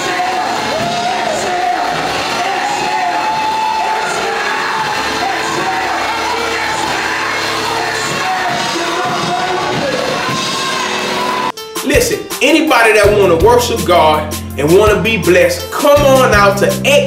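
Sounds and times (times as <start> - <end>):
voices singing: 0.0 - 11.4
congregation shouting: 0.0 - 11.5
drums: 0.0 - 17.0
keyboard: 0.0 - 17.0.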